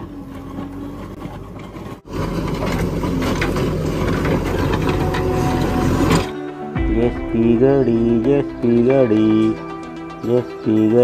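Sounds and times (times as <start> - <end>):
diesel engine running: 0.0 - 10.9
bucket scraping through asphalt: 1.2 - 6.4.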